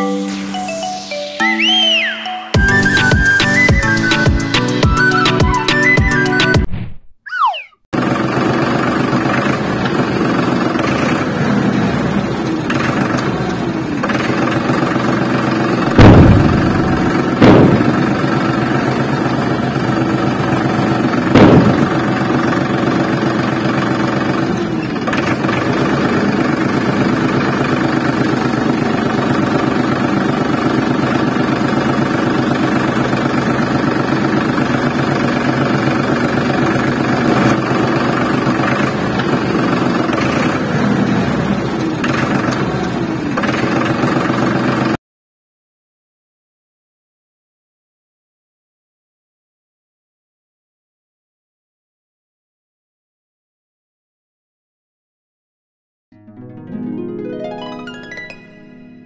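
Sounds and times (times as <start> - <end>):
tractor engine running: 2.6 - 6.6, 8.0 - 45.0
loud sudden thumps: 6.6 - 7.8, 16.0 - 18.4, 21.3 - 22.3.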